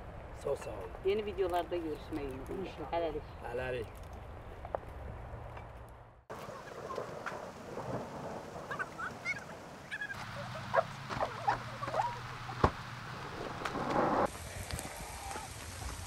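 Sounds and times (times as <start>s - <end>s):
open-air hiss: 6.3s - 16.0s.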